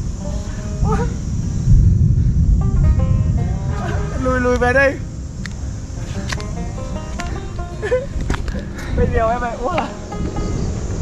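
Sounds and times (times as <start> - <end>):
wind rumbling on microphone: 0.0 - 11.0
kite flutes whistling: 0.2 - 1.7.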